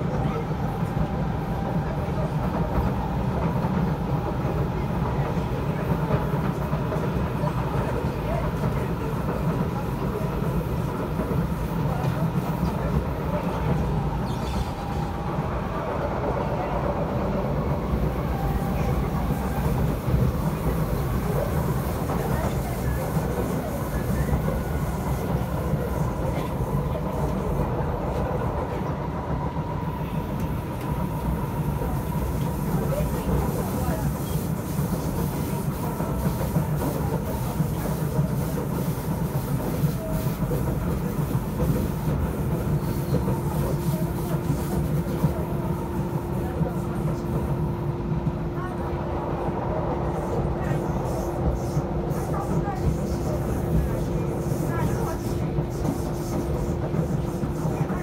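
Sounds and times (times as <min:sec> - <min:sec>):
train wheels rumbling on track: 0:00.0 - 0:58.0.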